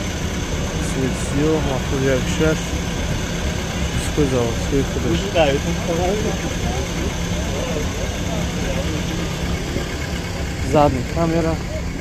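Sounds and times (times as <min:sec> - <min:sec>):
car engine idling: 0:00.0 - 0:12.0
voices talking: 0:00.0 - 0:12.0.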